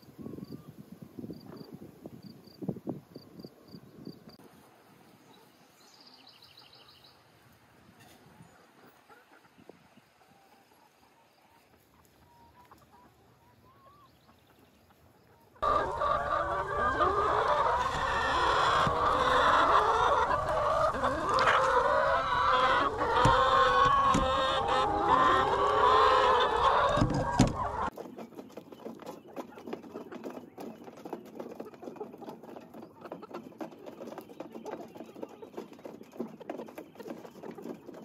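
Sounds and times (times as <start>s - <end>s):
hens clucking: 8.0s - 38.0s.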